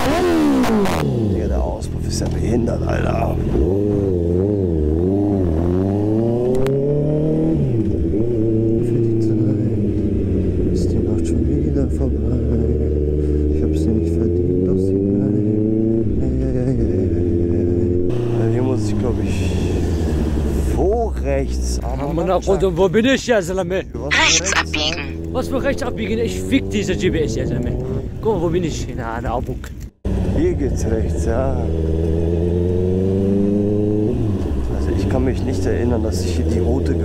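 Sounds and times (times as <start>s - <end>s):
motorcycle engine accelerating: 0.0s - 22.2s, 30.0s - 37.0s.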